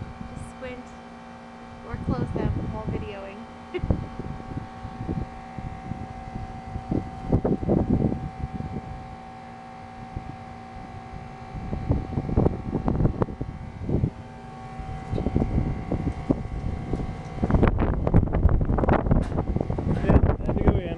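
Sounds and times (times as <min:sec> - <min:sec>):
wind buffeting microphone: 0:00.0 - 0:00.8, 0:01.6 - 0:20.9
faint steady hum: 0:00.0 - 0:20.9.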